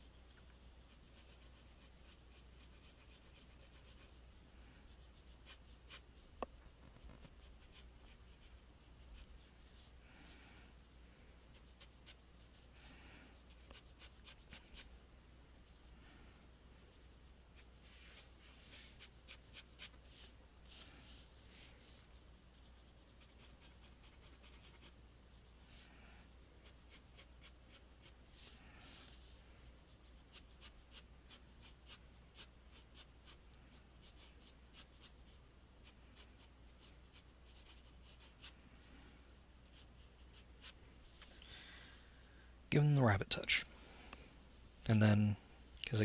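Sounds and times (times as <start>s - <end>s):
pencil sketching on paper: 0.1s - 4.3s, 4.9s - 6.1s, 7.0s - 9.9s, 11.5s - 12.7s, 13.4s - 14.9s, 17.0s - 25.8s, 26.6s - 35.1s, 35.8s - 38.5s, 39.6s - 41.4s.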